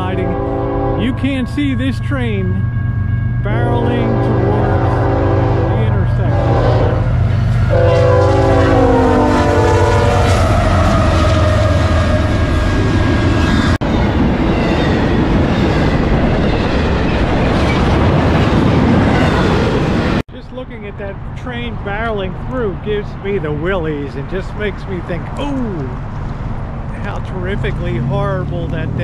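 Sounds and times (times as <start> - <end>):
train horn blasts: 0.0 - 2.6, 3.2 - 12.4
train rumbling and clattering past: 0.0 - 29.0.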